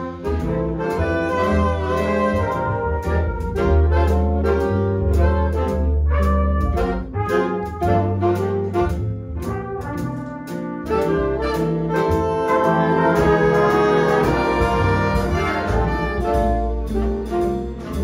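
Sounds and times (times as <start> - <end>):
jazz big band playing swing: 0.0 - 18.0.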